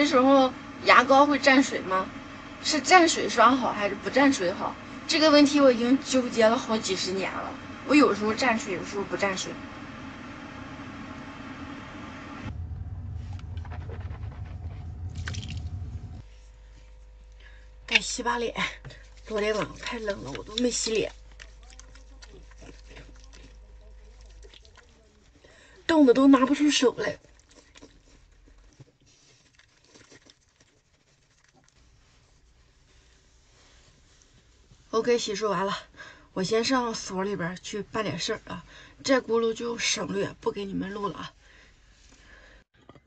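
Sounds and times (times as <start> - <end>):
low rumble: 0.0 - 17.8.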